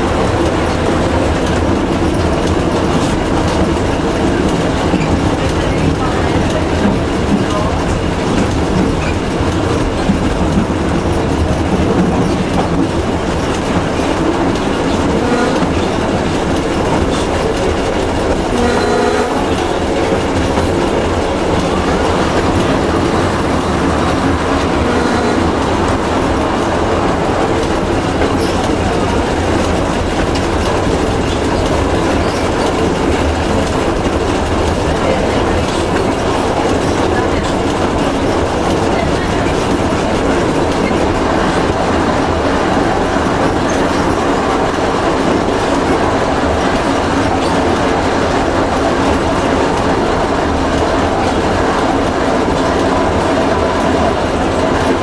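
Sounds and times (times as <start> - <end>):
train wheels on rails: 0.0 - 55.0.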